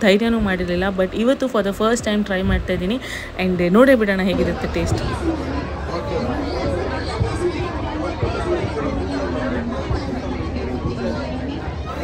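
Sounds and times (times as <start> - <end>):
crowd chatter: 0.0 - 12.0
people talking: 0.0 - 12.0.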